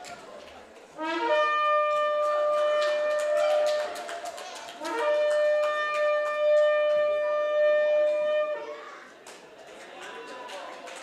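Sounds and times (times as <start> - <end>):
horn-like wind instrument note: 1.0 - 4.0, 4.8 - 8.8.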